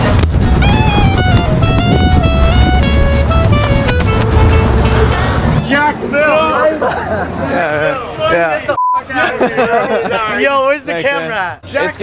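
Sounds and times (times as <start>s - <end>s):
music with steady beat: 0.0s - 5.3s
men's voices in the street: 5.2s - 12.0s.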